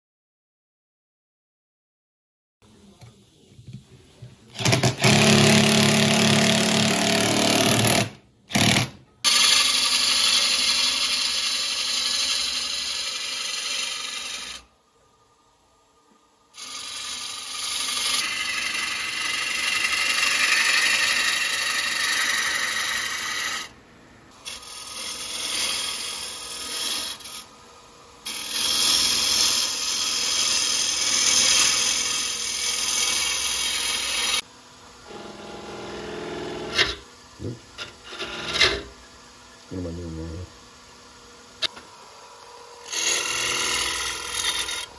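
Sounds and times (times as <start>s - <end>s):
lathe tool cutting wood: 9.3s - 14.7s, 16.6s - 23.7s, 24.4s - 27.4s, 28.2s - 34.4s, 35.1s - 38.9s, 42.8s - 44.9s.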